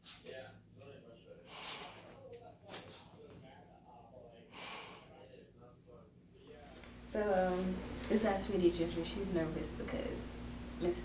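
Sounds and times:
quiet voices: 0.2s - 6.9s
dog snorting: 1.5s - 3.2s.

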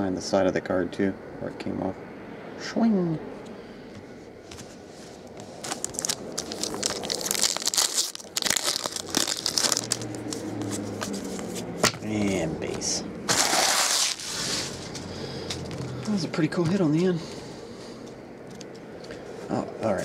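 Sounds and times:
cards being shuffled: 4.5s - 15.0s
foil wrappers crinkling: 5.1s - 11.6s, 13.3s - 14.8s.

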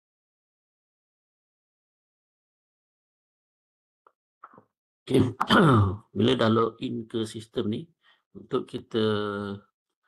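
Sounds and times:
person talking: 5.1s - 9.6s.

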